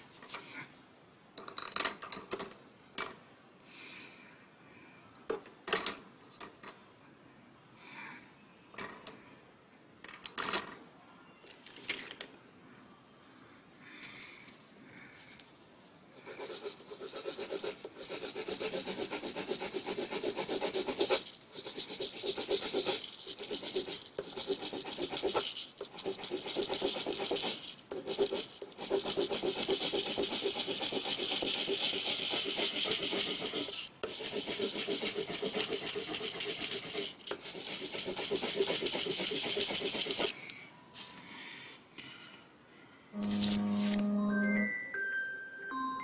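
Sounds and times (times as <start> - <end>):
pencil shading on paper: 16.3 - 40.3.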